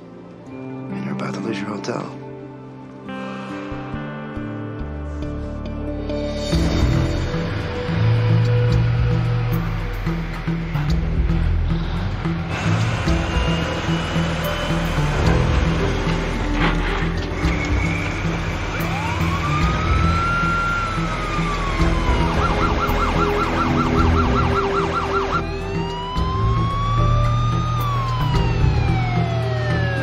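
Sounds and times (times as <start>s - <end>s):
background music: 0.0s - 30.0s
police siren wailing and yelping: 18.7s - 30.0s.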